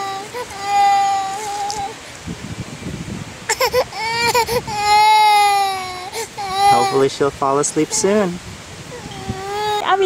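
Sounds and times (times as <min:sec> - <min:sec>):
toddler crying: 0:00.0 - 0:02.0, 0:03.5 - 0:07.2, 0:08.9 - 0:10.0.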